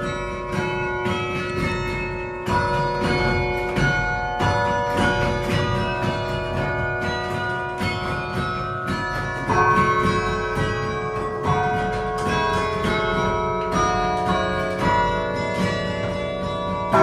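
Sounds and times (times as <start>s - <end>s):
carillon bells playing melody: 0.0s - 17.0s.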